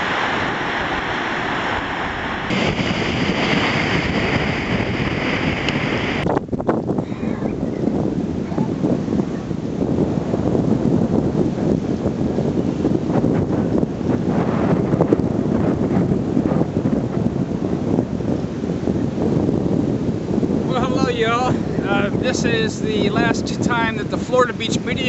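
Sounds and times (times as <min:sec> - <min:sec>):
wind buffeting microphone: 0:00.0 - 0:25.0
man speaking: 0:20.6 - 0:25.0.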